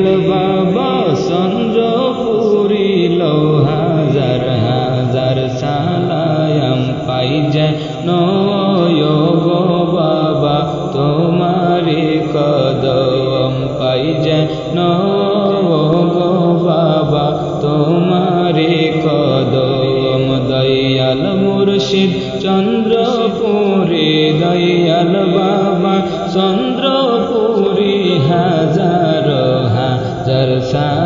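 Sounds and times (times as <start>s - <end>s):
devotional chanting song: 0.0s - 31.0s.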